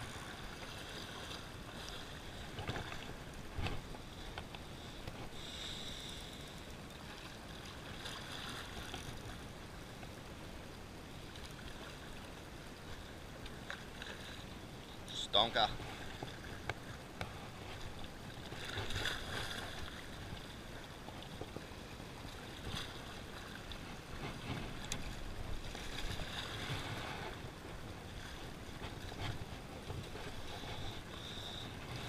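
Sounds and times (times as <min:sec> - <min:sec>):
sea water lapping against rocks: 0:00.0 - 0:09.4, 0:11.1 - 0:32.0.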